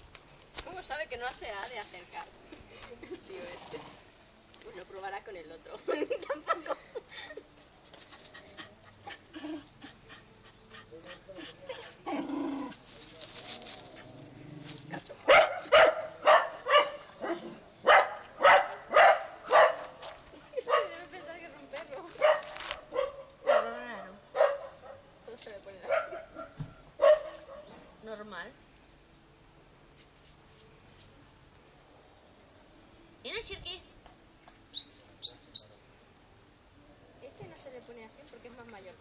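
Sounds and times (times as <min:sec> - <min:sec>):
small dog barking: 0:15.2 - 0:20.0, 0:20.6 - 0:21.0, 0:22.2 - 0:25.1, 0:25.9 - 0:27.8.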